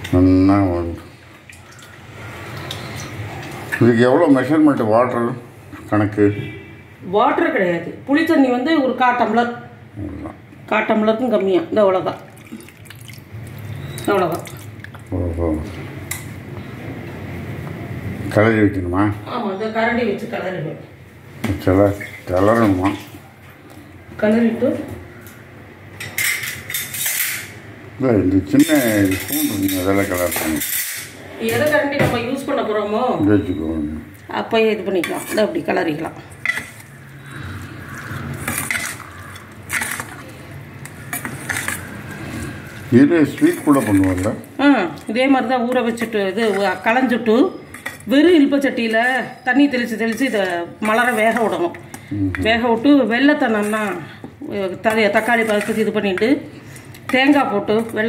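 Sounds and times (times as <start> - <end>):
liquid pouring and splashing: 12.1 - 15.1
spoon clinking against metal bowl: 28.6 - 31.2
spoon stirring wet rice: 36.3 - 48.2, 49.8 - 58.0.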